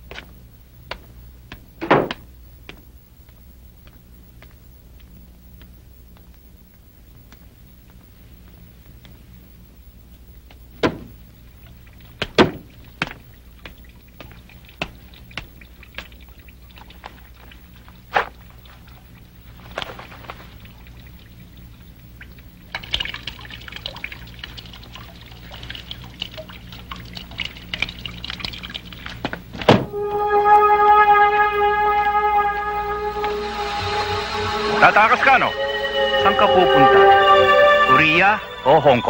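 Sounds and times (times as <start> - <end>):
loud thunk: 1.8 - 2.2, 10.8 - 11.1, 29.6 - 29.9
liquid splashing into urinal: 11.5 - 29.7
low sustained music note: 29.9 - 39.0.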